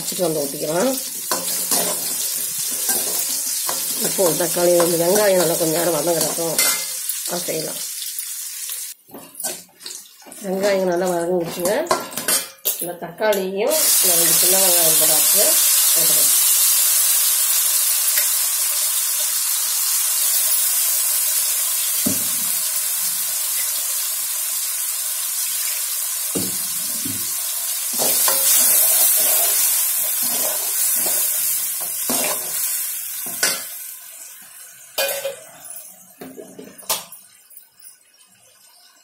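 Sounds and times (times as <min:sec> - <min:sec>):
food sizzling in hot oil: 0:00.0 - 0:12.6, 0:13.7 - 0:39.0
steel ladle scraping a pan: 0:01.2 - 0:07.2, 0:28.0 - 0:33.7.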